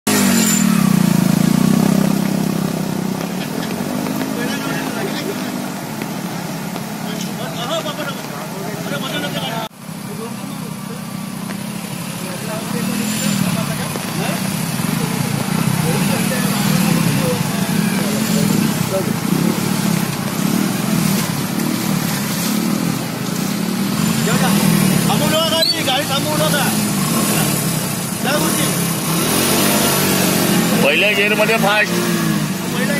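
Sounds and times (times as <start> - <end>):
motorcycle engines revving: 0.0 - 32.9
floodwater rushing: 0.1 - 10.2, 10.8 - 32.9
voices: 1.2 - 32.9.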